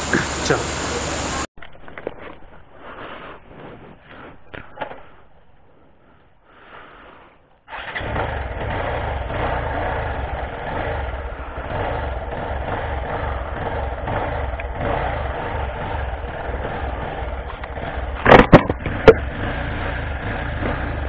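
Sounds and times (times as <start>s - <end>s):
vehicle engine idling: 0.0s - 1.5s, 7.8s - 21.0s.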